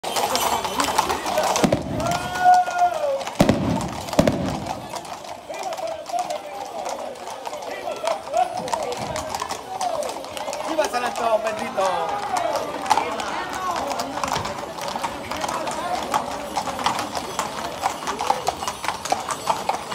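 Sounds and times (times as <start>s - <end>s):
horse hooves on pavement: 0.0s - 19.9s
people calling out and talking: 0.0s - 19.9s
long held shout: 2.0s - 3.3s.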